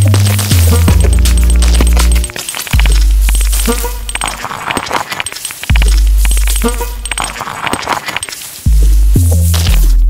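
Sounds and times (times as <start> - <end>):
crackling clicks and high ticks: 0.0 - 8.7.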